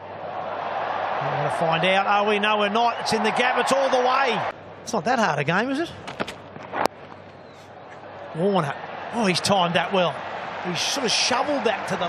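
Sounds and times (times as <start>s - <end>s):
stadium crowd noise: 0.0s - 5.0s, 6.7s - 12.0s.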